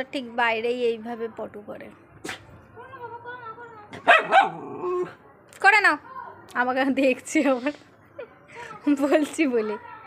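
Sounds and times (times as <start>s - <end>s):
small dog barking: 4.0s - 4.7s.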